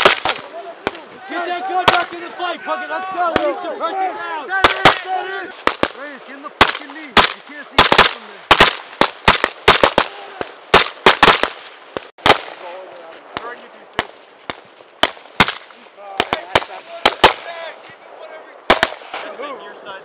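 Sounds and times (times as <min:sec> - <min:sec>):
rifle shots: 0:00.0 - 0:01.0, 0:05.6 - 0:12.6, 0:15.0 - 0:17.5, 0:18.7 - 0:19.3.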